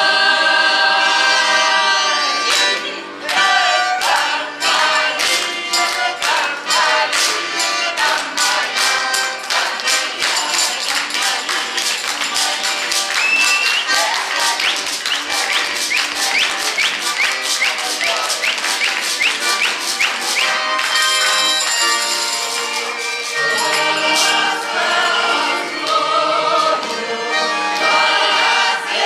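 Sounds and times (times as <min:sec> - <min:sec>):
accordion folk dance tune: 0:00.0 - 0:29.0
people clapping along: 0:00.0 - 0:29.0.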